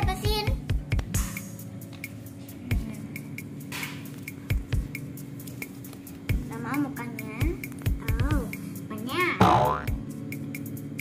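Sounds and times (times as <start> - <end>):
background music: 0.0 - 11.0
cartoon springy boings: 9.4 - 10.0.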